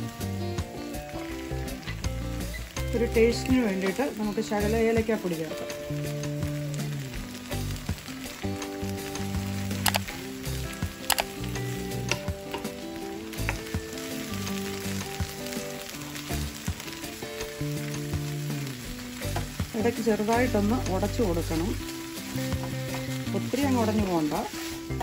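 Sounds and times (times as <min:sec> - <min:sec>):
background music held notes: 0:00.0 - 0:25.0
light sizzle: 0:00.0 - 0:25.0.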